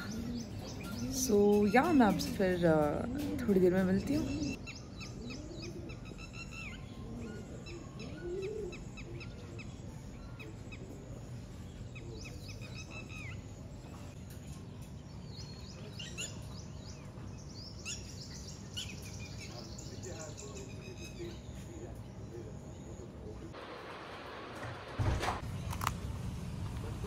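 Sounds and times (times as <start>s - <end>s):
birds chirping: 0.0s - 27.0s.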